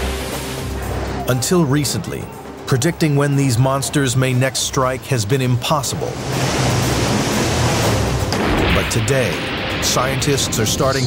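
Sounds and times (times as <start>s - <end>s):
floodwater rushing: 4.2s - 11.0s.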